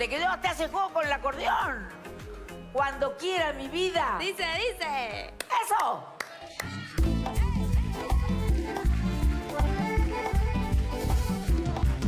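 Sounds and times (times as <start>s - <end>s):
backing band with bass beat: 7.0s - 12.0s.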